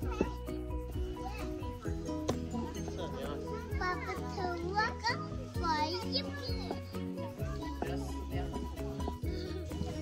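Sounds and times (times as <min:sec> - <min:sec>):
young children's high-pitched voices: 0:00.0 - 0:02.8, 0:03.4 - 0:08.3
background music with held notes: 0:00.0 - 0:10.0.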